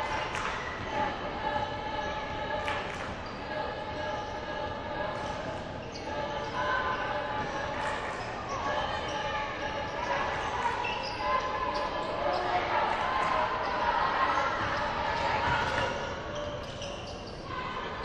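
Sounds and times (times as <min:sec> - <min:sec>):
indistinct voices echoing: 0:00.0 - 0:18.0.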